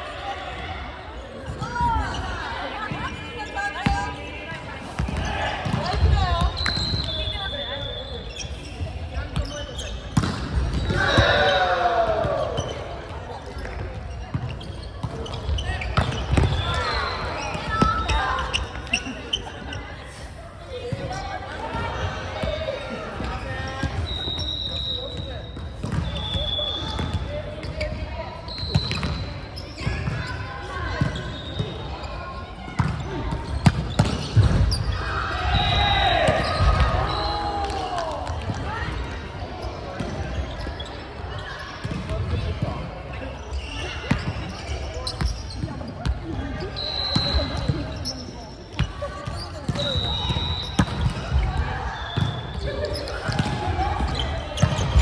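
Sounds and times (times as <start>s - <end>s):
volleyball hitting court: 10.1s - 12.8s, 32.7s - 34.8s, 48.7s - 51.6s, 52.2s - 55.0s
players shouting: 10.8s - 12.8s.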